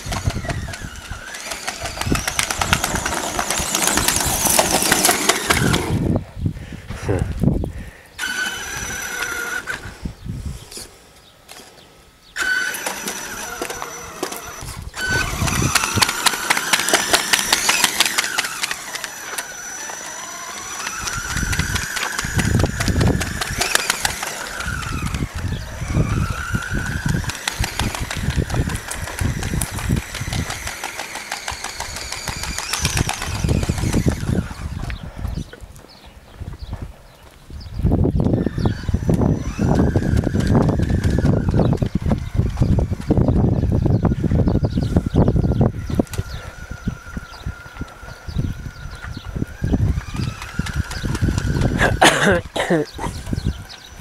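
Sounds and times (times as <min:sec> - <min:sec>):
electric motor whining: 0:00.0 - 0:06.2, 0:08.2 - 0:10.8, 0:12.4 - 0:35.5, 0:38.0 - 0:54.0.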